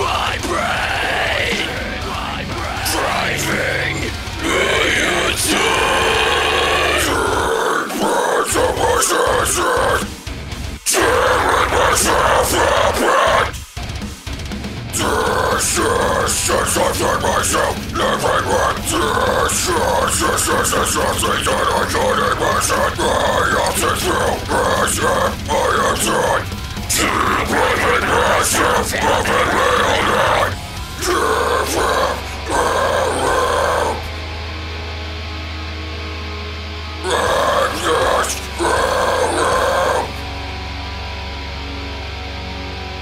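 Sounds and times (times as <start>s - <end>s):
man growling and screaming: 0.0s - 13.8s, 14.9s - 34.4s, 37.0s - 40.6s
deathcore song: 0.0s - 43.0s.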